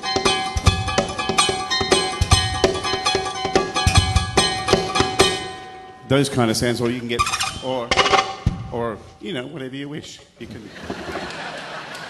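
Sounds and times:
ringing guitar string notes: 0.0s - 9.4s.

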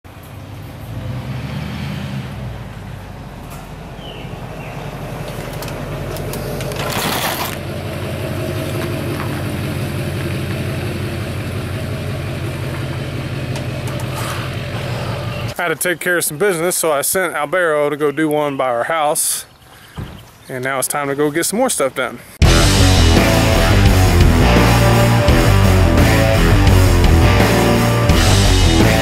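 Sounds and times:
truck engine running: 2.6s - 15.6s, 22.4s - 29.0s.

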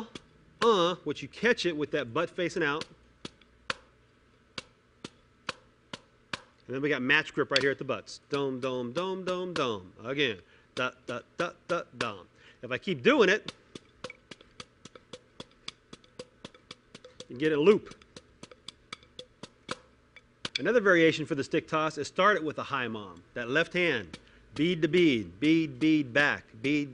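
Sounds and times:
drumsticks tapping practice pad: 0.0s - 1.0s, 2.2s - 6.7s, 7.5s - 9.9s, 10.7s - 12.2s, 13.1s - 20.8s, 23.0s - 26.9s.

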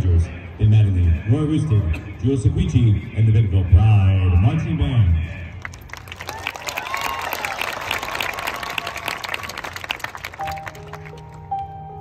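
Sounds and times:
audience applauding and cheering: 5.6s - 11.5s.

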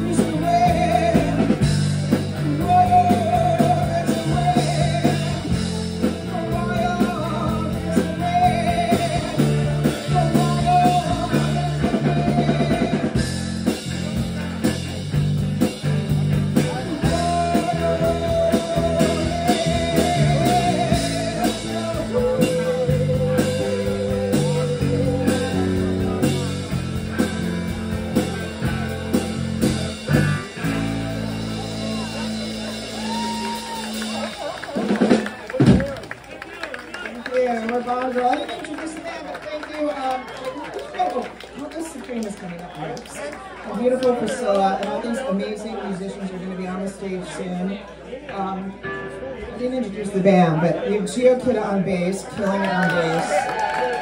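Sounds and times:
woman singing: 0.0s - 1.6s, 2.4s - 5.6s, 6.3s - 13.3s, 17.0s - 25.5s
drum kit: 0.0s - 36.2s
electric guitars: 0.0s - 37.4s.

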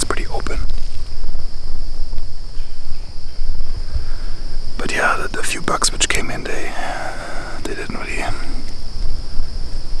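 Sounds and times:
crickets chirping: 0.0s - 10.0s
wind on microphone: 0.0s - 10.0s.

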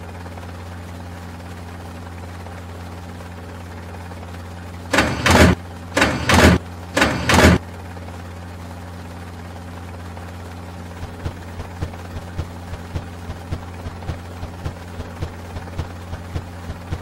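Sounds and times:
low engine drone: 0.0s - 17.0s
helicopter rotor thumps: 4.9s - 7.6s, 10.9s - 17.0s.

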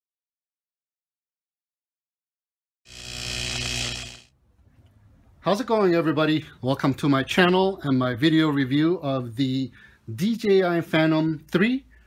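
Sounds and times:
electric buzzing hum: 2.9s - 4.4s.

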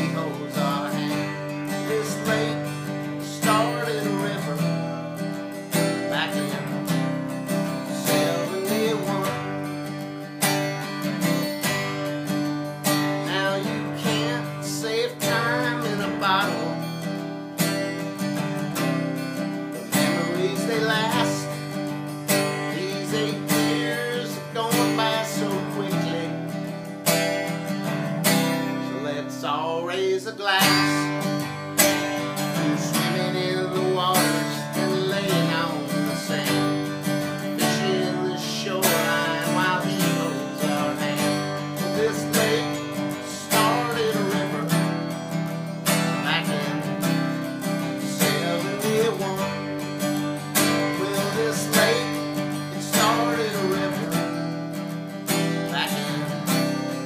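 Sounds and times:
acoustic guitar strumming: 0.0s - 57.0s
man singing: 0.0s - 57.0s.

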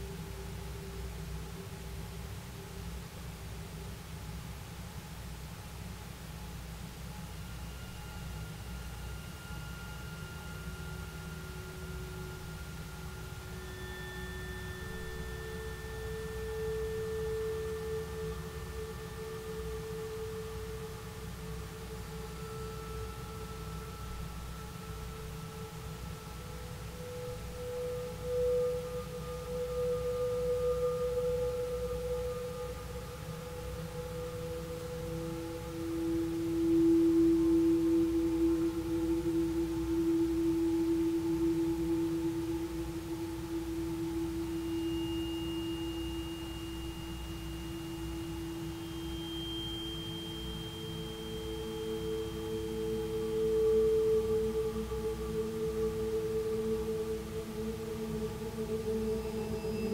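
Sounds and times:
singing bowls sustained tones: 0.0s - 59.9s.

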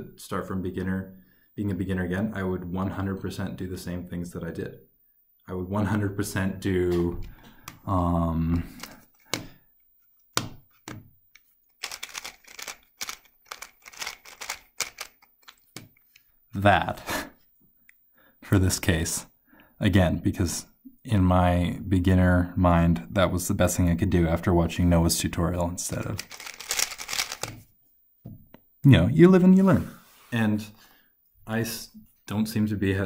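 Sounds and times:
puzzle cube plastic clicks: 10.2s - 16.3s, 26.0s - 27.6s.

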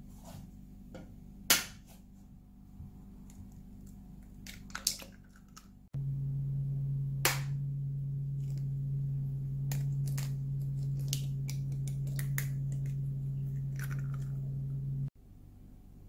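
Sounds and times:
steady low hum: 0.0s - 16.0s
eggshells cracking: 9.7s - 13.0s.

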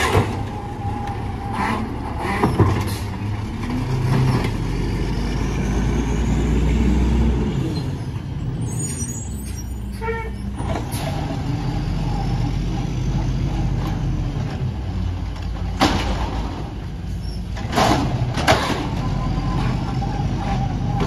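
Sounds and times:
truck engine revving: 0.0s - 9.6s
high squeal: 7.7s - 13.6s
knocks from truck arm and cart: 15.5s - 16.8s.

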